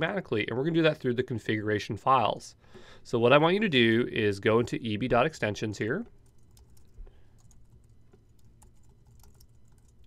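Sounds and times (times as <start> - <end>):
keyboard keys clicking: 6.0 - 10.0.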